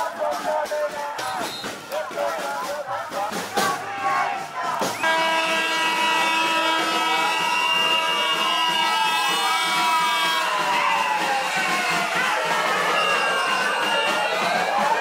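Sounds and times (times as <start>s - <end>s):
crowd shouting: 0.0s - 15.0s
steady horn tone: 5.0s - 10.7s.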